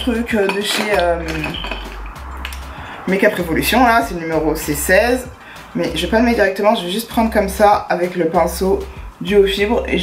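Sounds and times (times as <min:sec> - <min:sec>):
makeup items clinking and rustling: 0:00.0 - 0:02.7.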